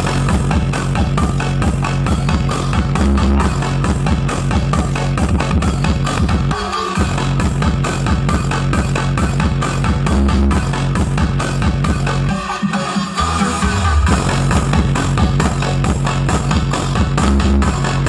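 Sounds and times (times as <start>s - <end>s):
dance music with heavy bass: 0.0s - 18.0s.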